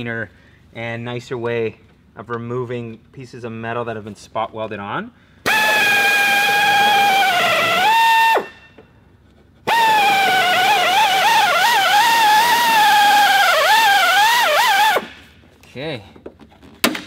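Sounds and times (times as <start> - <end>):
air drill whining: 5.4 - 8.7, 9.7 - 15.3.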